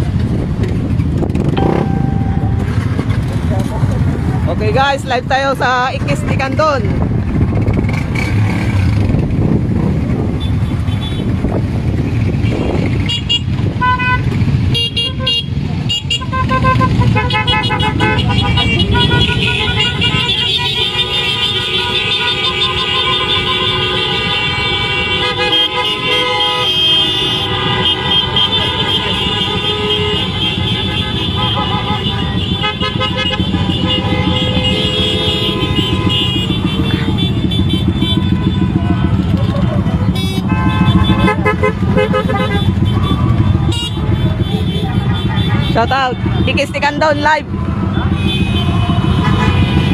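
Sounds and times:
motorcycle engines running: 0.0 - 49.9
horns honking: 1.4 - 3.5, 12.4 - 49.9.

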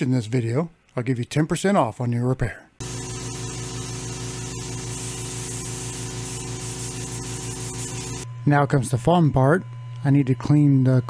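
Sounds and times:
air hissing from a nozzle: 2.8 - 8.2.

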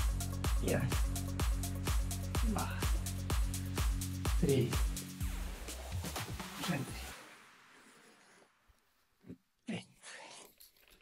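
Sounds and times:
man breathing hard: 2.2 - 4.3.

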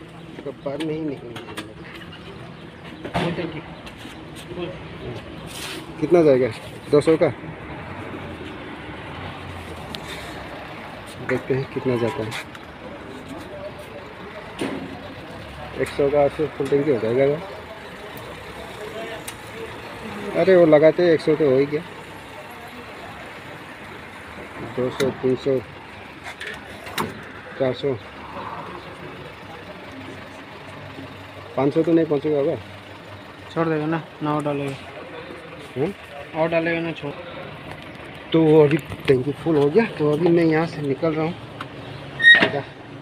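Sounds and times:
engine and traffic hum: 0.0 - 43.0
outdoor background noise: 0.0 - 43.0.

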